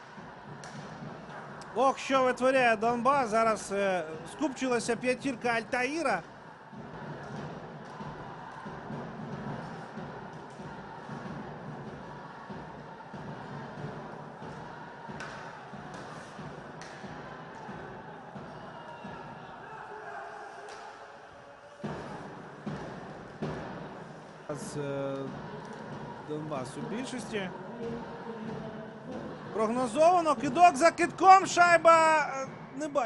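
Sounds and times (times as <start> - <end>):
arena crowd murmur: 0.0 - 33.0
hockey sticks and puck clacking: 0.6 - 1.4, 15.2 - 17.7.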